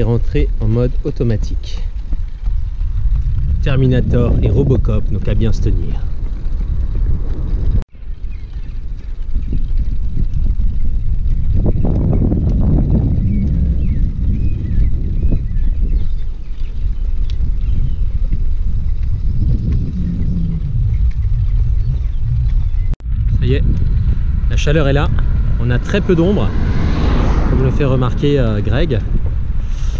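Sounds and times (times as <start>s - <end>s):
wind buffeting microphone: 0.0s - 29.9s.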